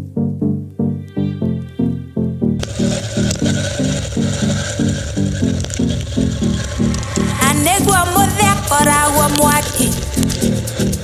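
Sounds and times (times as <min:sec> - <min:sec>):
low repeating bass riff: 0:00.0 - 0:11.0
scraping percussion rhythm: 0:02.6 - 0:11.0.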